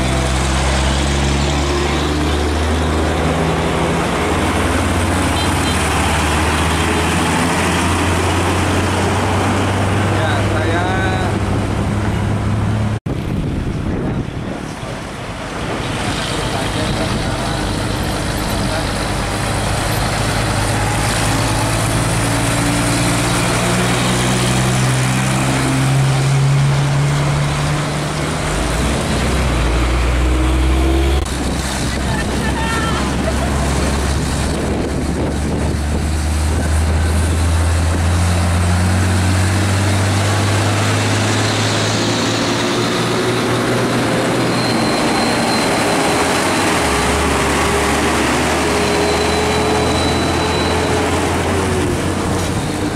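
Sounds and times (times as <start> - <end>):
truck diesel engine accelerating: 0.0 - 52.9.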